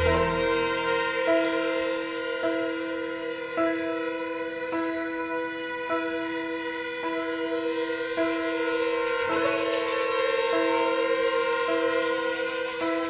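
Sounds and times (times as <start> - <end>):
ambient string quartet music: 0.0 - 13.0.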